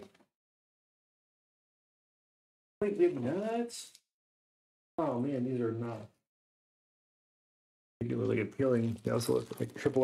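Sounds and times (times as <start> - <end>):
person speaking: 2.8 - 4.0, 8.0 - 10.0.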